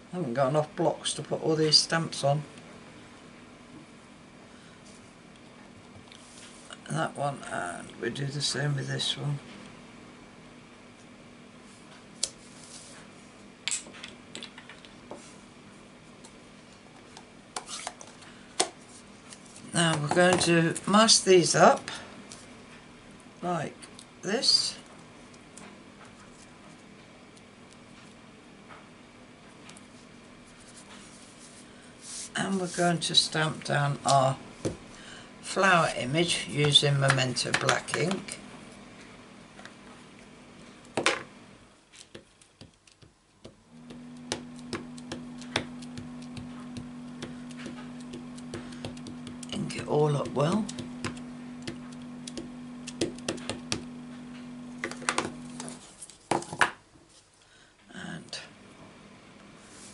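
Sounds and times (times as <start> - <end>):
low steady hum: 0.0 - 59.9
ink pad tapping on stamp block: 50.6 - 53.9.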